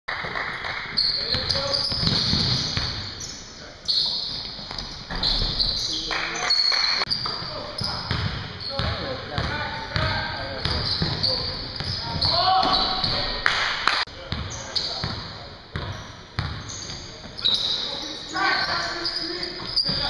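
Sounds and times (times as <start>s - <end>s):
voices echoing in gym: 0.8s - 20.0s
shoes squeaking on court: 0.9s - 13.4s, 14.3s - 20.0s
basketball bouncing: 8.1s - 11.2s, 14.3s - 16.7s.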